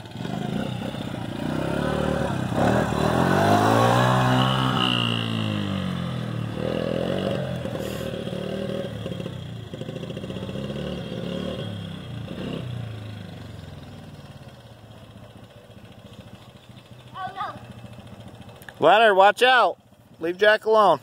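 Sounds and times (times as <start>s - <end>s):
small atv engine running: 0.0s - 21.0s.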